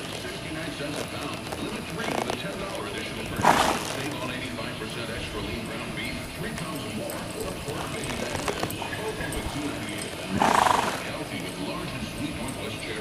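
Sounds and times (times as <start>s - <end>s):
hoofbeats on dirt: 0.0s - 13.0s
radio playing: 0.0s - 13.0s.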